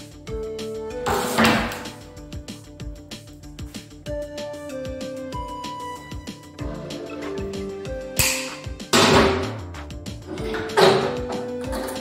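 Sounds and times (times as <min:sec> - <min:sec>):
background music: 0:00.0 - 0:12.0
steel tools clattering on vise: 0:10.4 - 0:12.0.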